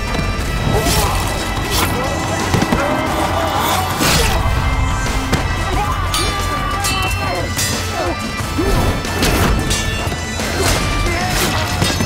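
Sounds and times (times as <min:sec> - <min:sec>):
dramatic score music: 0:00.0 - 0:12.0
fighters shouting: 0:00.4 - 0:12.0
swords clashing: 0:00.7 - 0:04.4, 0:05.7 - 0:12.0.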